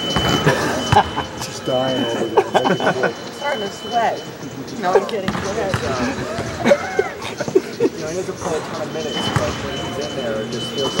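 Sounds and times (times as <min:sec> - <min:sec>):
voices talking: 0:00.0 - 0:11.0
man laughing: 0:00.4 - 0:03.2, 0:06.6 - 0:08.2.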